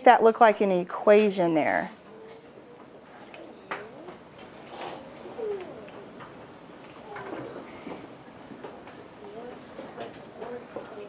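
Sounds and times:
child humming: 0:05.0 - 0:06.2.

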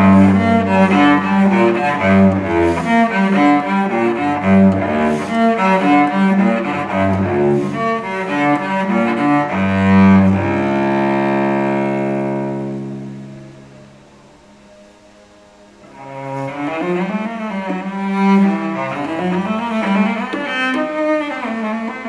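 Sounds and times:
bowed cello: 0:00.0 - 0:22.0.

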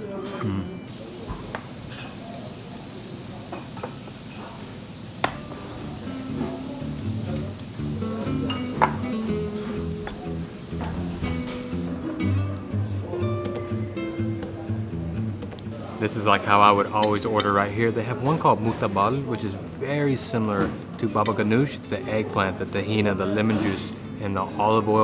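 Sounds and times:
glasses and dishes clinking: 0:01.9 - 0:02.2, 0:05.2 - 0:07.3, 0:08.3 - 0:11.7
music: 0:05.3 - 0:21.8.

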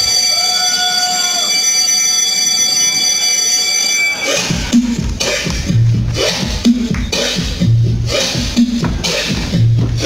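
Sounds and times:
electronic alarm tone: 0:00.0 - 0:04.9.

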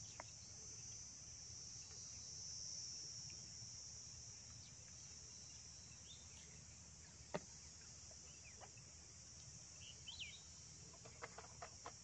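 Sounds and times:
faint ticks: 0:00.0 - 0:02.6
insects chirring: 0:00.0 - 0:12.0.

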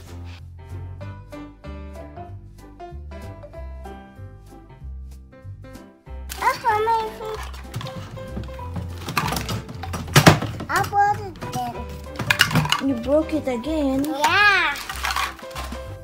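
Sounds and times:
plastic toy pieces clattering: 0:06.3 - 0:13.1, 0:13.7 - 0:16.0.

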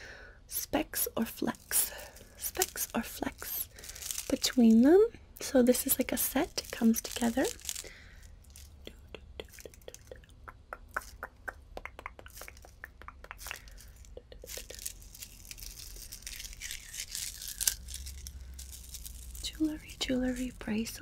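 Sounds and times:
beads rustling when rubbed: 0:00.6 - 0:10.2, 0:12.2 - 0:21.0
beads clicking together: 0:01.0 - 0:21.0.

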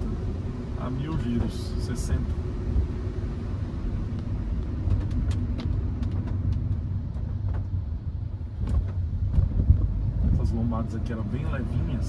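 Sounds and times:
engine and tyre rumble: 0:00.0 - 0:12.0.

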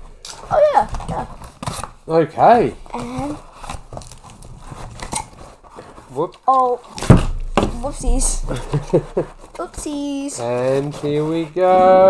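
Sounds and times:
cardboard box crackling and scraping: 0:03.0 - 0:06.2, 0:07.8 - 0:12.0.

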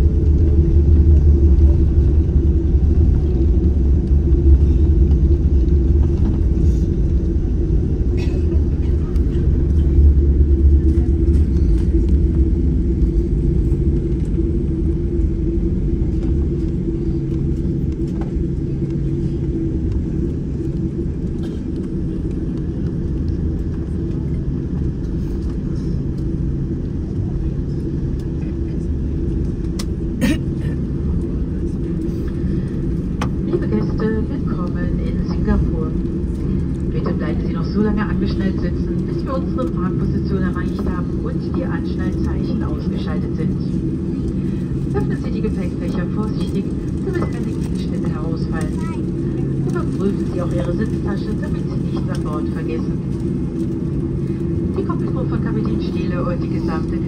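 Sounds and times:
aircraft cabin rumble: 0:00.0 - 0:57.0.

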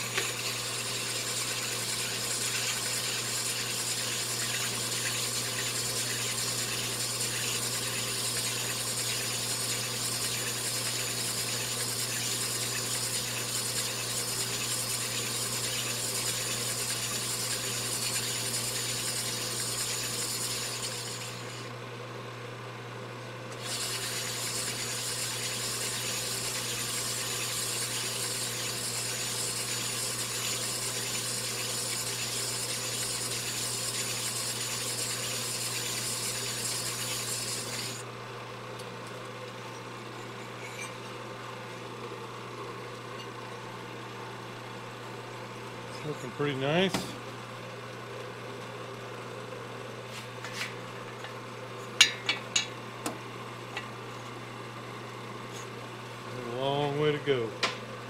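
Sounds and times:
honing stones rasping on metal: 0:23.6 - 0:38.0.

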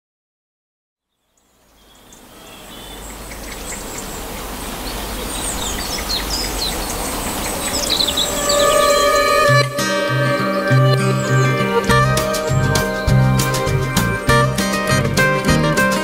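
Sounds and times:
small birds chirping: 0:01.0 - 0:09.7, 0:10.5 - 0:15.0.

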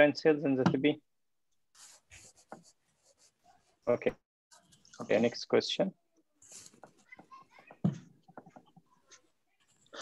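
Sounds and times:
scratchy writing strokes: 0:01.7 - 0:03.8, 0:06.4 - 0:07.7.

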